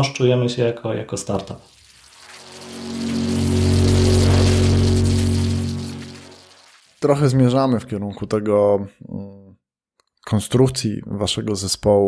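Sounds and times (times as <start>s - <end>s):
rushing whoosh: 1.7s - 6.8s
low synth chord: 2.0s - 6.8s.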